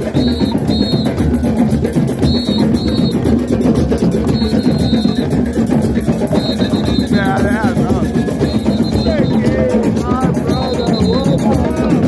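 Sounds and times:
hand drums playing fast rhythm: 0:00.0 - 0:12.0.

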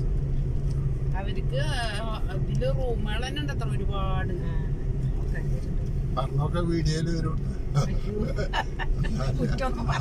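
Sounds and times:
car engine and road noise: 0:00.0 - 0:10.0
person speaking: 0:07.8 - 0:10.0.

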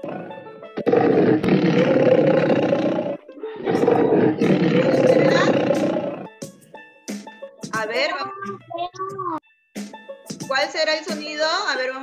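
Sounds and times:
large animal roaring: 0:00.0 - 0:06.3.

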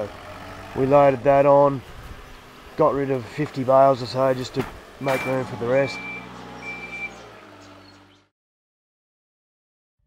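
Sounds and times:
forklift engine running: 0:00.0 - 0:08.3
reversing alarm beeping: 0:05.0 - 0:07.2.

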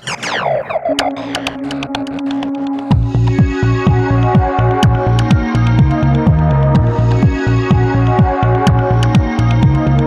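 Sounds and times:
rapid uneven clicks: 0:01.0 - 0:03.4.

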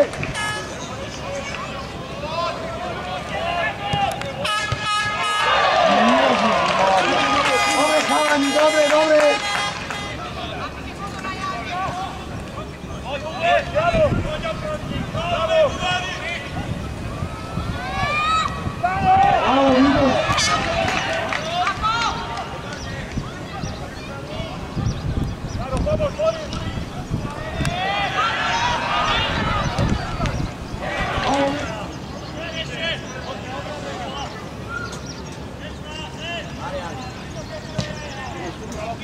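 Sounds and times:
crowd shouting: 0:00.0 - 0:12.4, 0:13.0 - 0:24.8, 0:27.3 - 0:35.0.

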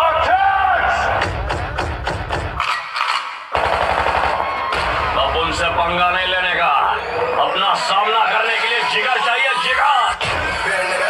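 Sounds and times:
machine-gun fire sound effect: 0:02.6 - 0:05.2
dance music over loudspeakers: 0:07.0 - 0:11.0.

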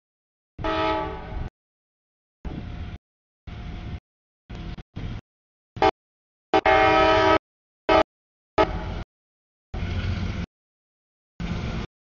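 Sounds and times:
locomotive air horn: 0:00.6 - 0:01.5, 0:05.8 - 0:09.0.

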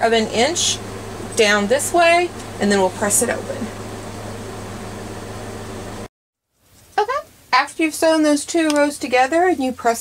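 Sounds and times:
fan hum and hiss: 0:00.0 - 0:06.1.

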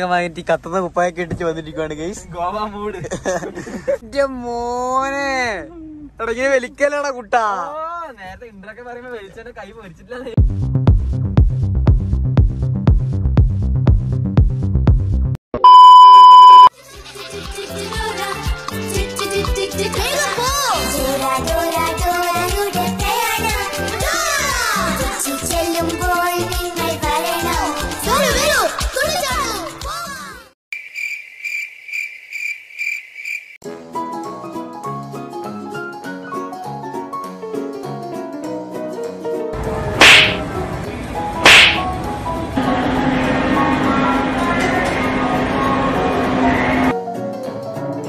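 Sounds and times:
high-pitched test-tone beep: 0:15.6 - 0:16.7
background music: 0:16.8 - 0:30.2, 0:33.6 - 0:48.0
sharp swishing cracks: 0:40.0 - 0:40.4, 0:41.4 - 0:41.9.

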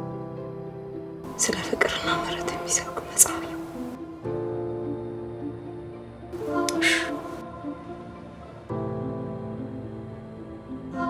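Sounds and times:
keyboard background music: 0:00.0 - 0:11.0
woman speaking softly: 0:01.3 - 0:03.7, 0:06.6 - 0:07.3.

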